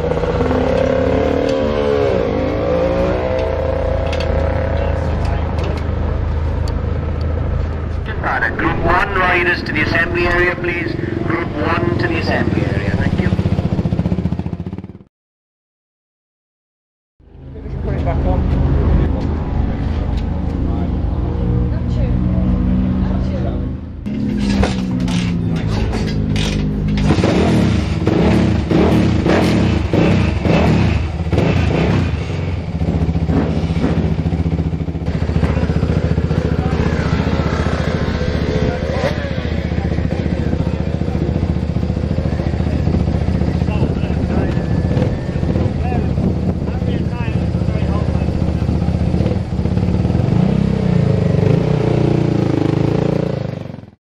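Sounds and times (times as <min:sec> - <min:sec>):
single-cylinder motorcycle engine running: 0:11.0 - 0:15.1, 0:24.1 - 0:53.9.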